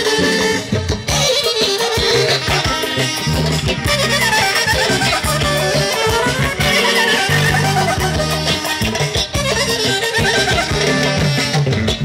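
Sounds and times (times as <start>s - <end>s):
band playing fast folk dance music: 0.0s - 12.0s.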